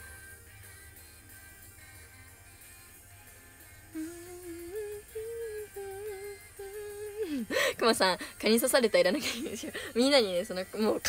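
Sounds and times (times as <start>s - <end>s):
woman humming: 3.9s - 7.7s.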